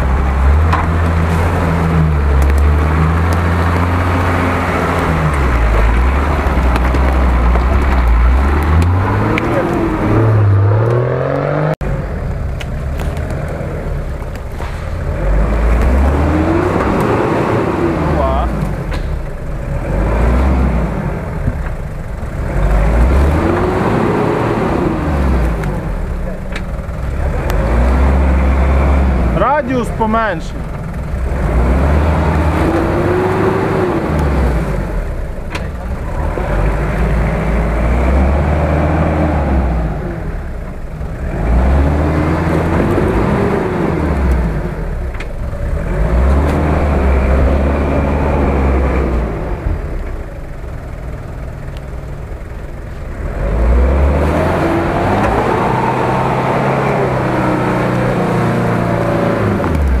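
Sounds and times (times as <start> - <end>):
off-road engine revving: 0.0 - 60.0.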